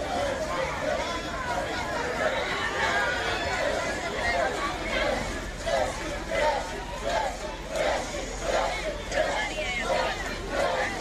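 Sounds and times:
crowd calling and shouting: 0.0s - 11.0s.

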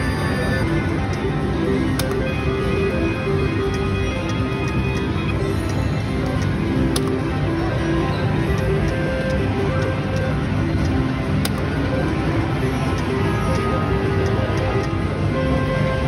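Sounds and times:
sharp clicks: 0.9s - 15.1s.

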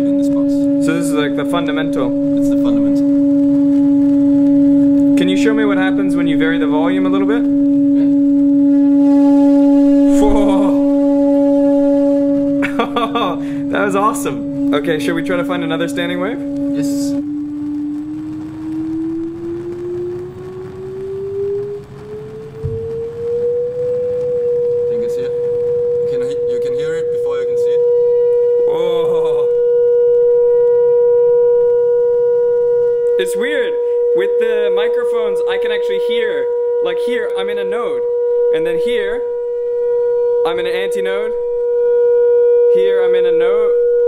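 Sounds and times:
steady buzzy test tone: 0.0s - 44.0s
person laughing: 10.2s - 10.8s, 12.6s - 13.8s.

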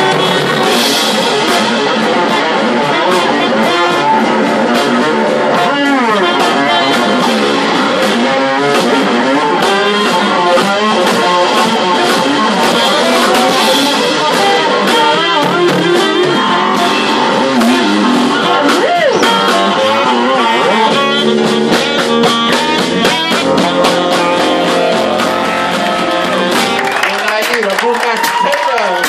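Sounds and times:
fretless electric bass gliding notes: 0.0s - 27.5s
drums: 0.0s - 29.0s
keyboards: 0.0s - 29.0s.

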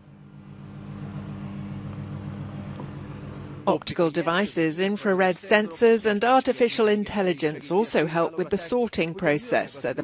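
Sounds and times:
conveyor belt drive hum: 0.0s - 10.0s.

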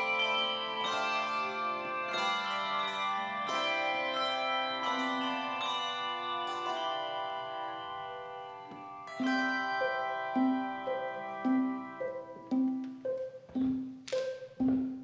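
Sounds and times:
handbell chords ringing: 0.0s - 15.0s
short repeated bell notes: 0.0s - 15.0s.

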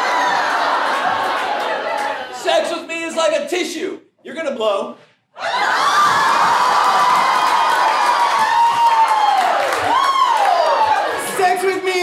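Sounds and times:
audience laughing and cheering: 0.0s - 2.8s, 5.4s - 12.0s
high whoops: 5.4s - 11.2s.

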